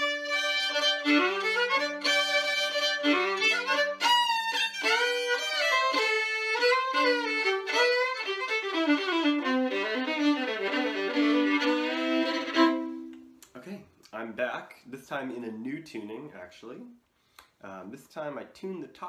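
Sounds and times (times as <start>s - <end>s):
solo fiddle tune: 0.0s - 13.3s.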